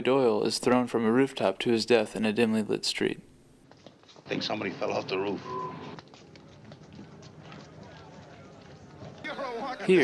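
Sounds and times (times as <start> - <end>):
man narrating: 0.0 - 3.3, 9.3 - 10.0
faint running footsteps: 3.6 - 10.0.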